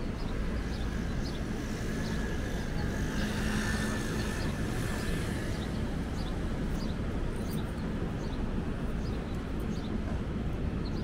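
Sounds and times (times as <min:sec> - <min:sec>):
rumble of traffic: 0:00.0 - 0:11.0.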